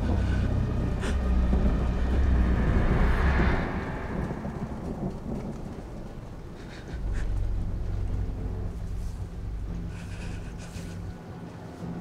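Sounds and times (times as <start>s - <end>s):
rain: 0.0s - 12.0s
thunder rumbling: 0.0s - 12.0s.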